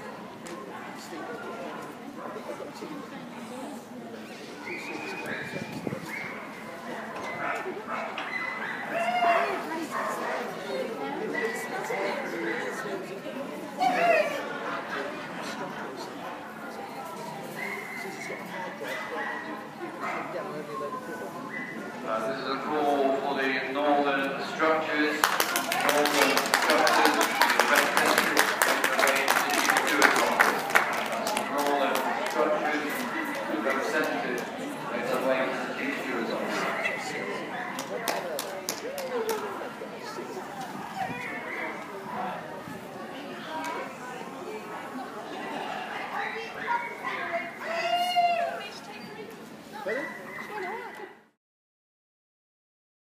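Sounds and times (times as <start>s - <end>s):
background chatter of people: 0.0s - 51.4s.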